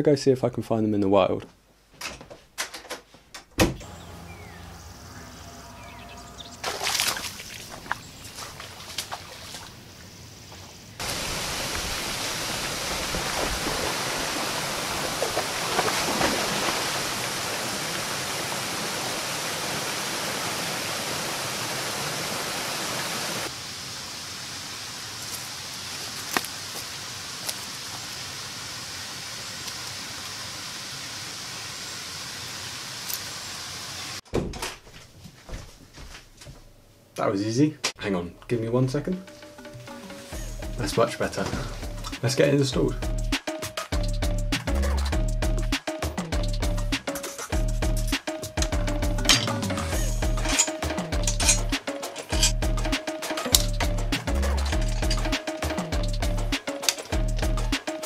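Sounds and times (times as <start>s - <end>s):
flowing water outdoors: 4.2s - 10.2s, 10.8s - 34.2s
water splashing: 6.1s - 10.0s, 11.0s - 23.5s
waterfall rushing: 11.0s - 31.9s.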